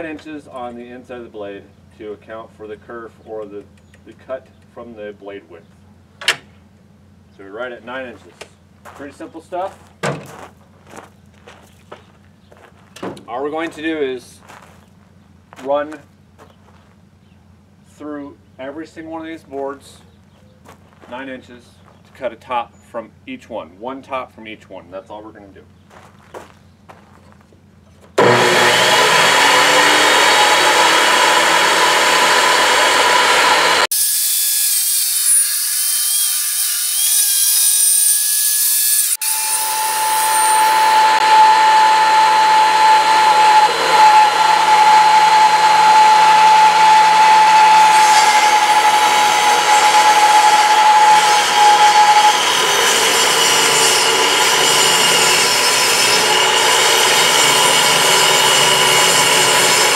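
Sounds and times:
table saw whining: 0:28.2 - 0:59.9.

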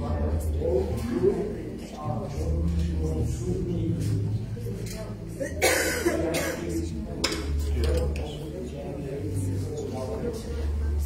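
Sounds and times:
person coughing: 0:05.4 - 0:06.8.

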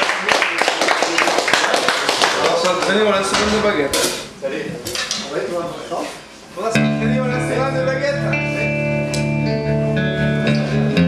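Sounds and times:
murmur of voices: 0:00.0 - 0:09.0.

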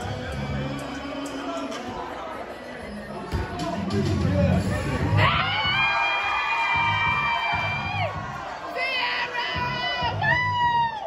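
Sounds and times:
crowd shouting and cheering: 0:00.0 - 0:11.0.

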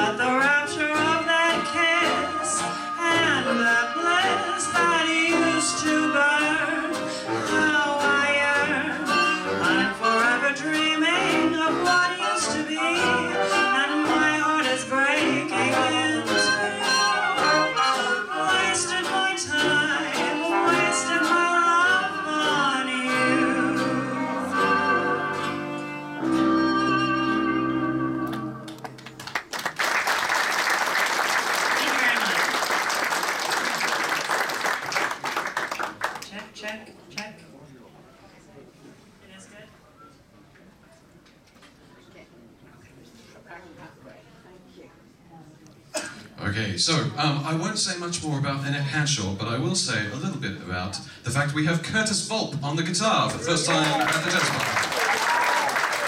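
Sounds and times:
woman singing jazz: 0:00.0 - 0:25.7
small jazz band playing: 0:00.0 - 0:29.6
audience applause: 0:28.7 - 0:36.4, 0:53.3 - 0:56.0.

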